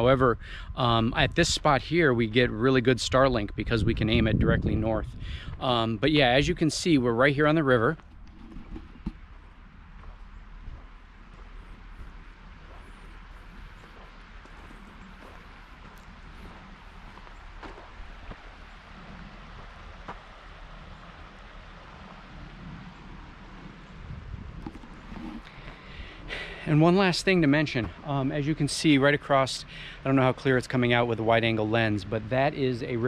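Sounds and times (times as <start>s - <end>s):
wind rumble on microphone: 0.0s - 28.1s.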